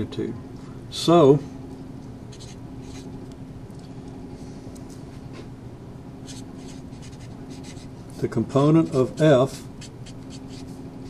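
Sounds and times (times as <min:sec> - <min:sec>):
faint steady hum: 0:00.0 - 0:11.0
marker scratching on whiteboard: 0:02.3 - 0:03.1, 0:06.2 - 0:07.9, 0:08.9 - 0:10.7.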